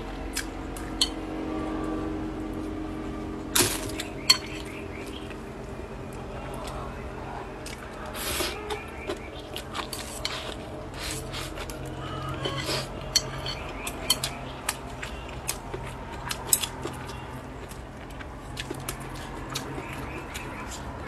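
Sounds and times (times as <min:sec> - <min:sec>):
person chewing food: 0:07.6 - 0:21.0.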